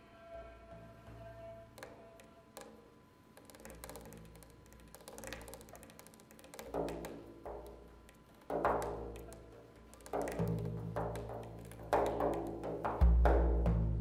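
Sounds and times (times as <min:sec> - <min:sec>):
frame drum played with fingers: 0:03.4 - 0:14.0.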